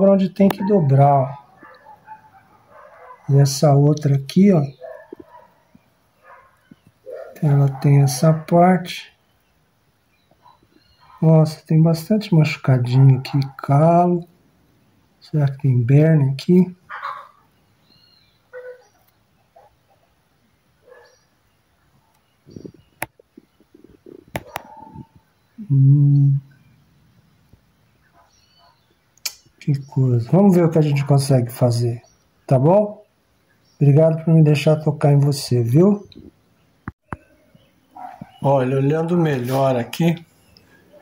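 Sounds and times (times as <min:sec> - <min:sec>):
faint bird calls: 0:04.7 - 0:11.3, 0:16.7 - 0:20.2, 0:20.8 - 0:26.9, 0:27.9 - 0:29.9, 0:36.0 - 0:41.0
sharp clicks: 0:29.2 - 0:29.5.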